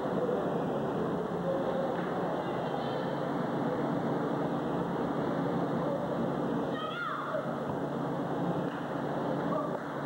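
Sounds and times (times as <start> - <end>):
murmur of small crowd: 0.0 - 10.0.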